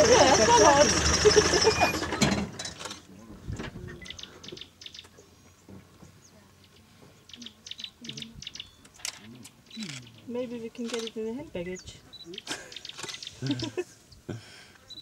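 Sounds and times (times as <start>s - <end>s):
high ticks and chirps: 4.0s - 5.2s, 6.6s - 11.4s
person laughing: 13.4s - 14.5s.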